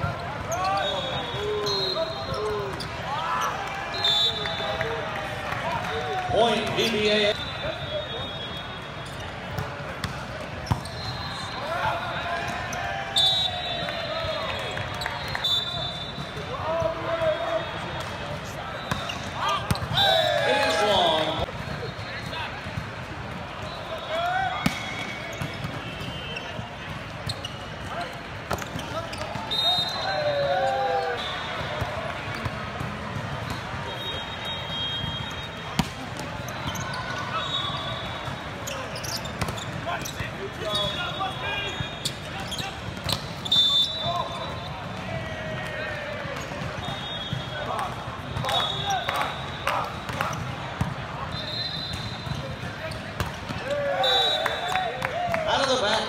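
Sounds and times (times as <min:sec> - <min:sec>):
shoes squeaking on court: 0:00.1 - 0:03.6, 0:08.8 - 0:11.8, 0:18.7 - 0:20.0, 0:24.6 - 0:30.0, 0:32.3 - 0:45.0, 0:51.7 - 0:53.8
volleyball ball contacts: 0:09.4 - 0:12.7, 0:13.3 - 0:30.3, 0:31.1 - 0:36.6, 0:37.3 - 0:56.0
players calling out: 0:10.6 - 0:21.6.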